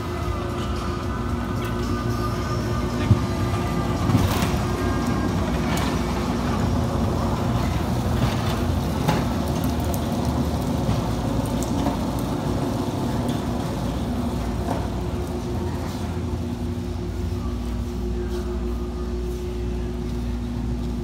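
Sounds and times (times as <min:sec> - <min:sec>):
pallet jack rumbling and rattling: 0:03.0 - 0:12.2.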